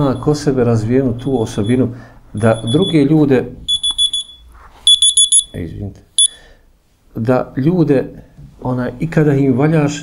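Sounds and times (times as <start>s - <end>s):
high-pitched phone beeps: 2.4s - 3.0s, 3.7s - 5.6s, 6.2s - 6.4s.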